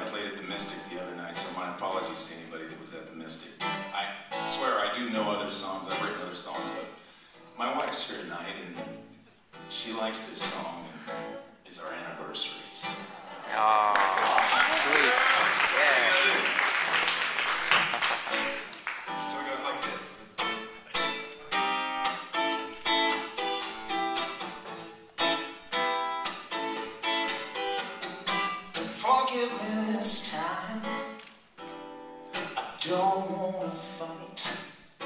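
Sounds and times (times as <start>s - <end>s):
acoustic guitar strumming: 3.6s - 7.6s, 16.8s - 35.0s
audience applause: 13.4s - 19.5s.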